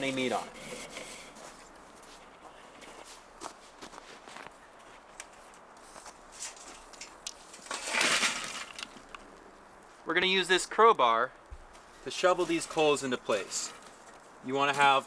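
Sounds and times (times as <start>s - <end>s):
charcoal rattling into grill: 6.4s - 9.2s
grill gear clinking and scraping: 13.3s - 14.0s.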